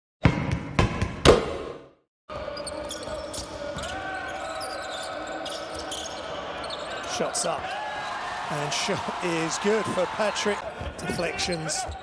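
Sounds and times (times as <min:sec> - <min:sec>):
arena crowd noise: 0:02.3 - 0:12.0.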